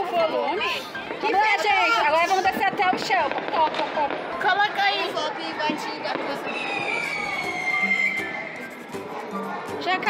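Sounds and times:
background music: 0.0s - 10.0s
whistling firework: 6.2s - 8.6s.

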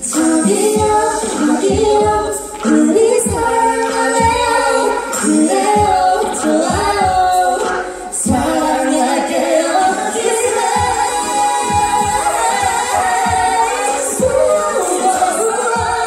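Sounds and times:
backing track with steady beat: 0.0s - 16.0s
woman and man singing duet: 0.0s - 16.0s.

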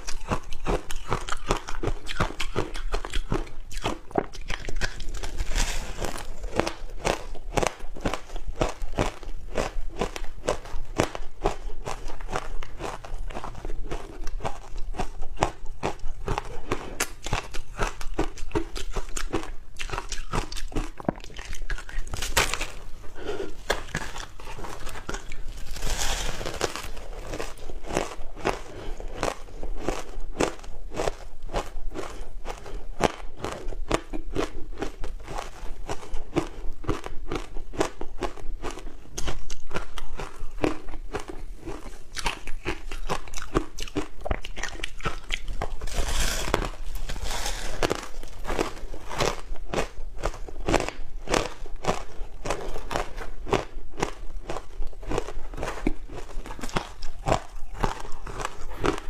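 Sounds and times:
crunching and chewing ice: 0.0s - 59.0s.

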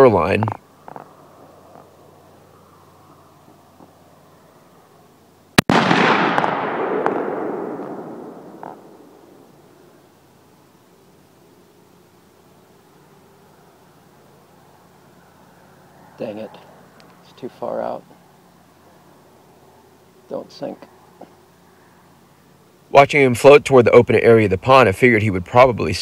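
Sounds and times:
rifle shot with echo: 5.6s - 9.5s.

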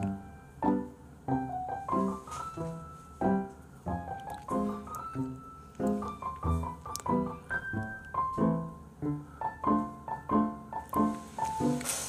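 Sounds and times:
light piano melody: 0.0s - 12.0s.

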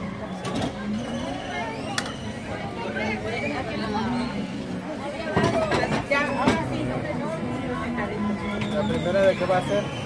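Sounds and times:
background chatter: 0.0s - 10.0s
voices talking: 0.0s - 10.0s.

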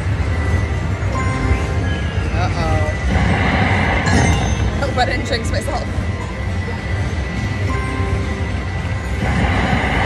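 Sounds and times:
electronic slot machine music: 0.0s - 10.0s
low casino hum: 0.0s - 10.0s.

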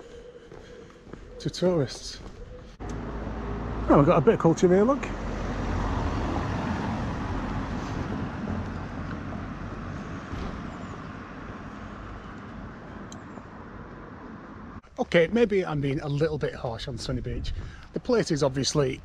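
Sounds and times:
motor vehicle passing: 1.1s - 14.8s.

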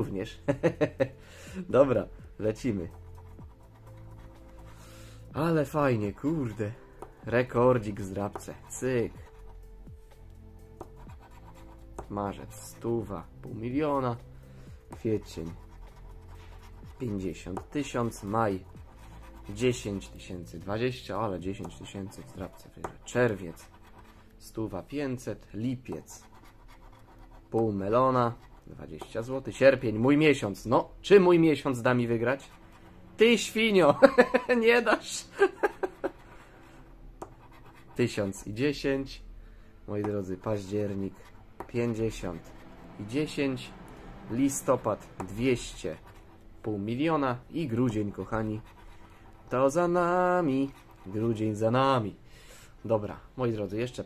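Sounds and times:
quiet background music: 0.0s - 54.0s
metal spoon scraping scratch card: 2.6s - 4.9s, 10.8s - 11.9s, 15.0s - 20.7s, 21.4s - 24.9s, 37.2s - 38.3s, 47.8s - 49.6s, 50.3s - 51.7s.

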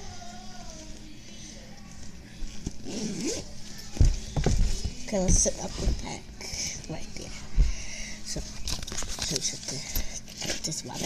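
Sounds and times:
person humming: 0.0s - 1.8s.

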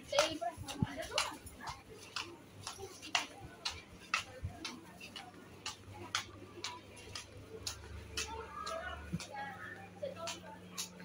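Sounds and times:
footsteps on pavement: 0.0s - 11.0s.

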